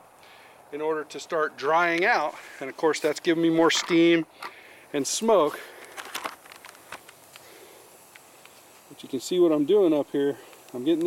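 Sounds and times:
wood fire crackling: 0:00.0 - 0:11.0
pops and ticks from burning sticks: 0:01.8 - 0:11.0.

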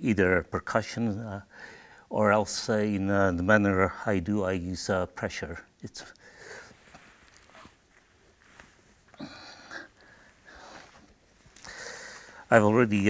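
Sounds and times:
person breathing: 0:01.5 - 0:02.1, 0:06.2 - 0:07.4, 0:08.4 - 0:12.5
faint rustles: 0:06.4 - 0:12.6.

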